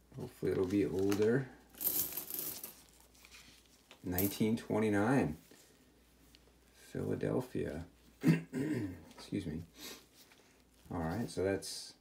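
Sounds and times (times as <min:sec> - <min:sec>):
gloved fingers rustling coin: 0:00.6 - 0:04.5.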